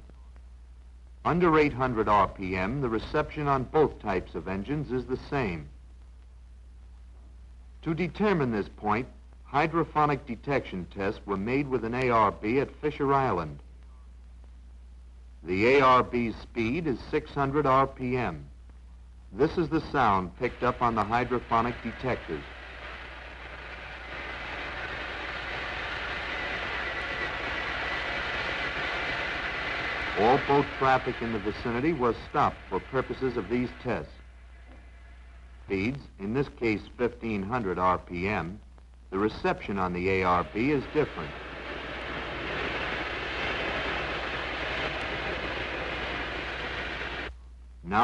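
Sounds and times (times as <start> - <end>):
faint steady whine: 0.0 - 48.0
low hum: 12.5 - 47.8.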